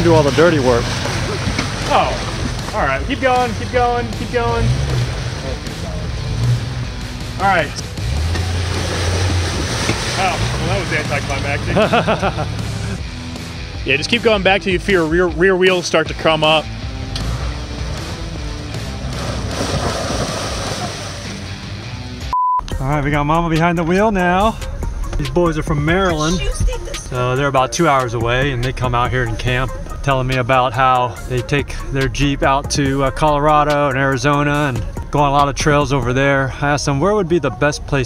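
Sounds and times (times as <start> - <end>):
engine running at low speed: 0.0 - 13.6, 16.7 - 22.1
background music: 0.0 - 38.0
short pure beep: 22.3 - 22.7.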